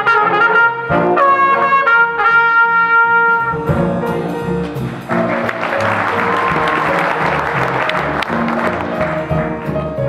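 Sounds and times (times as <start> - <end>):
jazz band playing: 0.0 - 10.0
audience applauding: 4.9 - 9.7.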